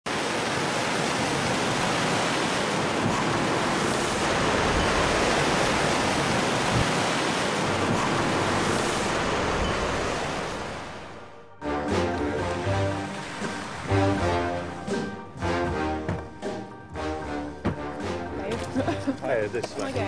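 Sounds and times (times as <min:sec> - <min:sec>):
rushing water: 0:00.1 - 0:20.0.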